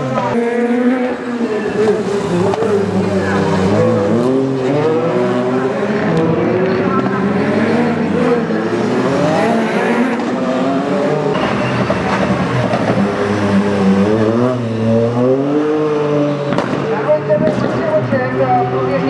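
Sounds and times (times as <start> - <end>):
rally car engine revving: 0.0 - 19.0.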